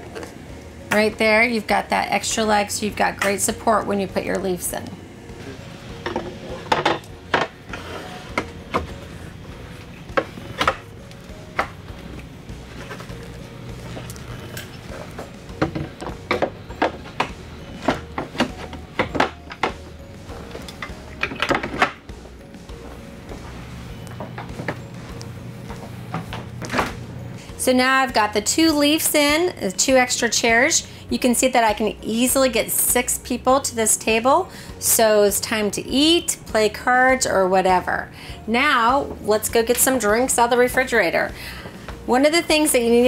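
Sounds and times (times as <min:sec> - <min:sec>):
quiet background music: 0:00.0 - 0:43.0
table leaves knocking and clacking: 0:20.6 - 0:22.1.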